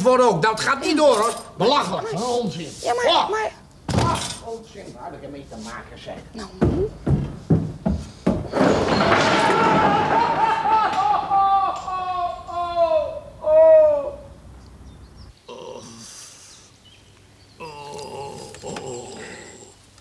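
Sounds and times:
sharp knocks: 6.6s - 11.2s
long wordless wail: 9.0s - 14.4s.

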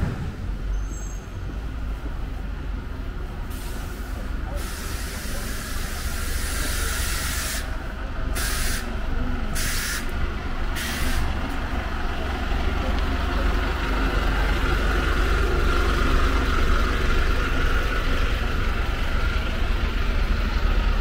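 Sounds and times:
bus engine rumbling: 0.0s - 21.0s
compressed air hisses: 3.5s - 7.7s, 8.4s - 9.0s, 9.6s - 10.1s, 10.8s - 11.3s.

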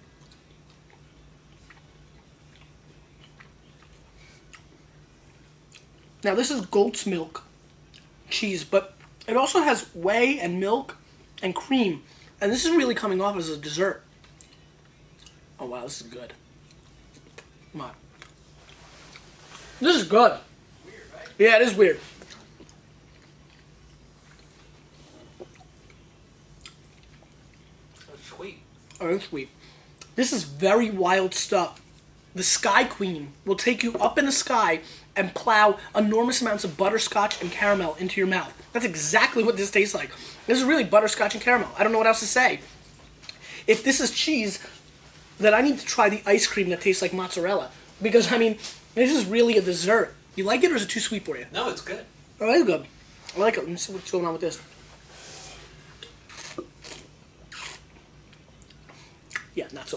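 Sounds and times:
person chewing: 0.0s - 6.2s, 7.8s - 8.2s, 14.2s - 15.4s, 16.5s - 19.6s, 22.2s - 29.0s, 56.0s - 59.5s
low steady hum: 0.0s - 59.9s
small mouth clicks: 56.0s - 57.8s.

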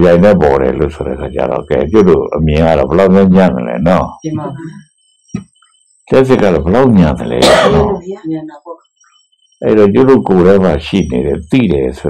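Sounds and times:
man giving a sermon: 0.0s - 4.7s, 6.1s - 8.0s, 9.6s - 12.0s
harsh throat-clearing: 7.3s - 8.0s.

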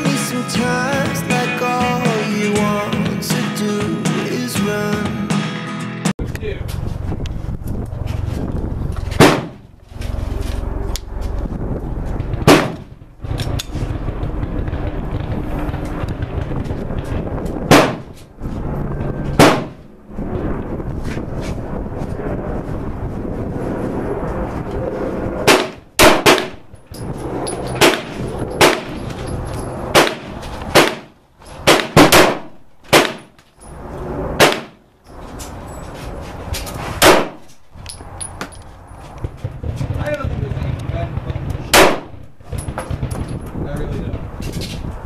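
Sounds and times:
pistol shots: 9.2s - 9.7s, 12.4s - 13.0s, 17.7s - 18.1s, 19.4s - 19.8s, 25.4s - 26.6s, 27.7s - 29.0s, 29.9s - 33.3s, 34.4s - 34.8s, 37.0s - 37.4s, 41.2s - 43.4s.

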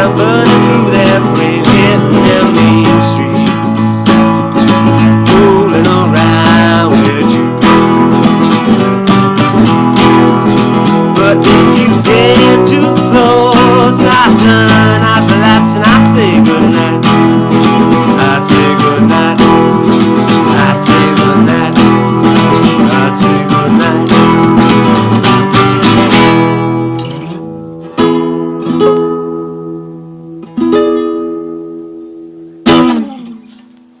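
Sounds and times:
acoustic guitar strumming: 0.0s - 34.0s
guitar chords ringing out: 0.0s - 34.0s.

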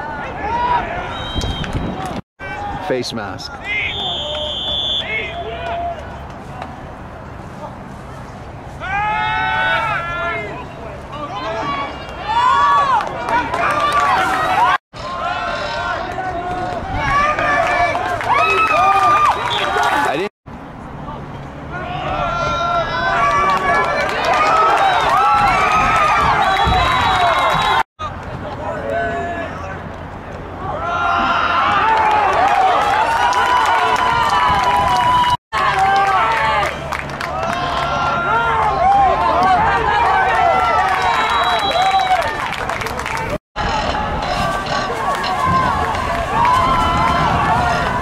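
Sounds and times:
crowd shouting and cheering: 0.0s - 6.9s, 8.8s - 20.3s, 21.6s - 48.0s
people shouting: 8.8s - 20.2s, 30.6s - 36.7s, 43.6s - 48.0s.

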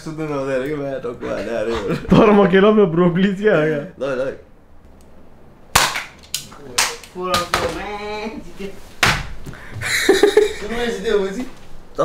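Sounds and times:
toy blaster firing cracks: 5.8s - 7.0s.

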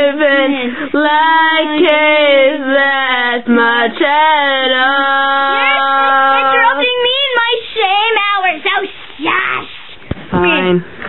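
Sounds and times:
child singing wordless notes: 4.9s - 7.5s.

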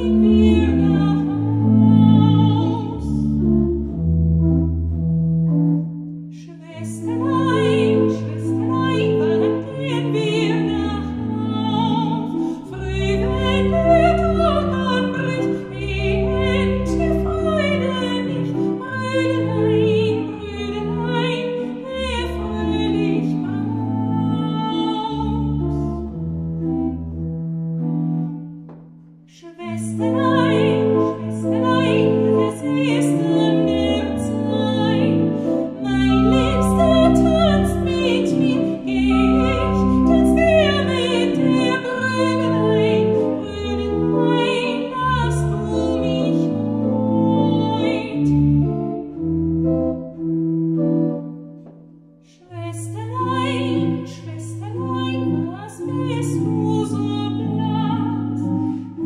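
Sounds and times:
woman singing with vibrato: 0.0s - 3.3s, 6.4s - 25.9s, 29.3s - 48.5s, 52.3s - 59.0s
pipe organ chords: 0.0s - 6.2s, 7.0s - 29.1s, 29.9s - 51.8s, 53.2s - 59.0s.

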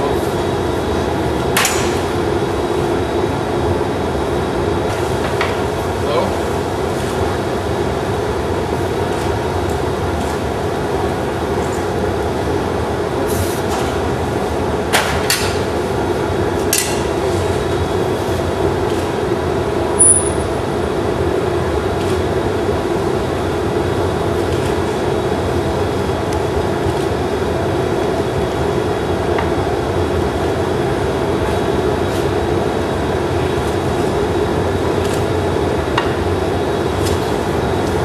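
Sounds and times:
burners and furnace roaring: 0.0s - 38.0s
high-pitched ping: 20.0s - 20.5s.

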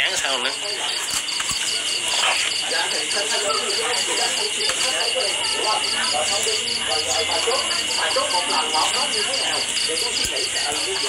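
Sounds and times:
high-pitched insect trill: 0.0s - 11.0s
insects chirping: 0.0s - 11.0s.

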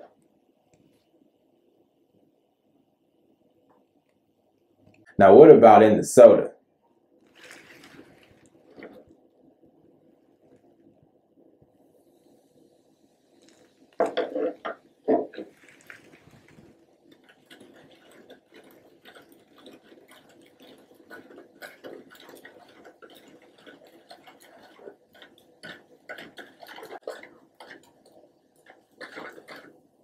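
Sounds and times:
spoon scraping plastic cup: 7.3s - 9.0s, 13.4s - 27.9s, 29.0s - 29.8s
soda fizzing: 7.3s - 9.1s, 11.8s - 29.9s.

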